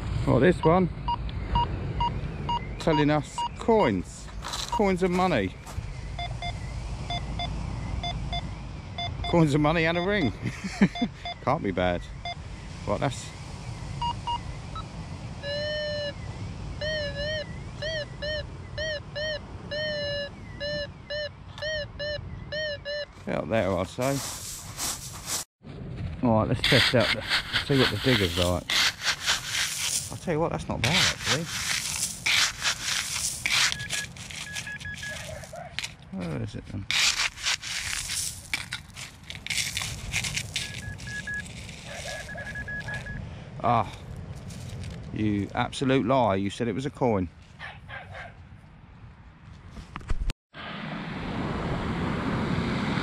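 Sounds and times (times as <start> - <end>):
metal detector beeps: 0.6 - 3.6, 4.6 - 5.4, 6.1 - 12.4, 14.0 - 16.2, 16.8 - 24.4, 27.0 - 30.0, 30.8 - 36.0, 36.9 - 43.2
pebbles crunching and scraping: 23.5 - 25.5, 26.6 - 43.2, 43.8 - 45.5.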